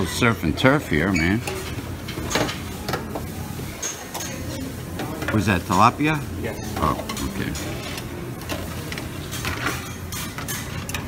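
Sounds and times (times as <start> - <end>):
background hubbub: 0.0 - 11.0
metal tongs clinking on pans: 1.2 - 11.0.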